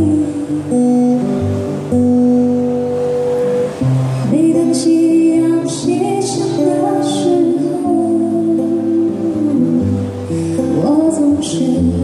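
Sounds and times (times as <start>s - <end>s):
person singing ballad: 0.0s - 2.9s, 4.2s - 12.0s
acoustic guitar chord: 0.0s - 12.0s.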